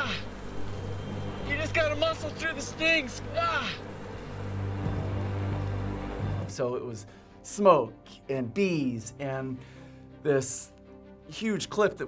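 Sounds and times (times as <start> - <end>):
ominous drone music: 0.0 - 8.3.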